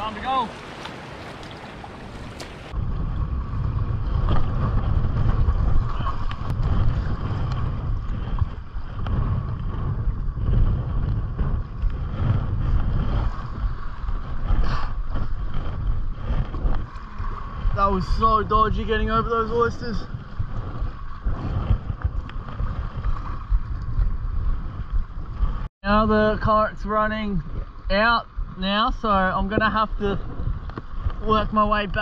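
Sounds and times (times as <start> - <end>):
water splashing around paddle board: 0.0 - 25.7, 29.4 - 32.0
wind rumbling on microphone: 0.0 - 32.0.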